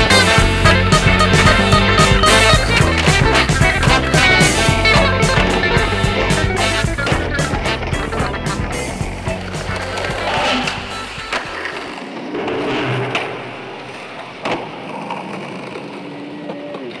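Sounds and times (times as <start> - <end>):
music: 0.0 - 12.2
skateboard wheels rolling on concrete: 0.0 - 17.0
skateboard clacking on ground: 7.0 - 17.0.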